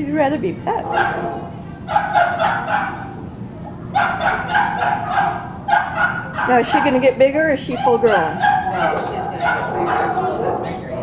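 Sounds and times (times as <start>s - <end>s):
dog barking: 0.9s - 3.2s, 3.9s - 7.0s, 8.0s - 11.0s.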